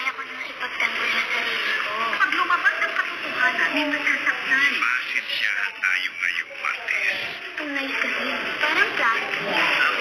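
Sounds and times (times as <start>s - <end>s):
spoken dialogue: 0.0s - 10.0s.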